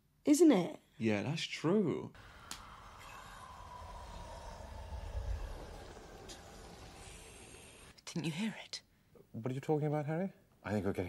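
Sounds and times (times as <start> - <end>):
low rumble: 2.2 - 8.0.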